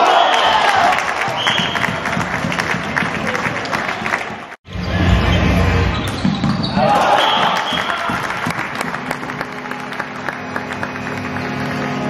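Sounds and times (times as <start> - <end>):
shoes squeaking on court: 5.9 - 7.8.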